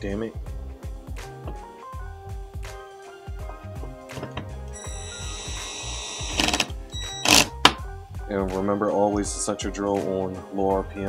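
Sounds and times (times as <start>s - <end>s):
background music: 0.0s - 11.0s
cordless drill motor whining: 4.8s - 7.5s.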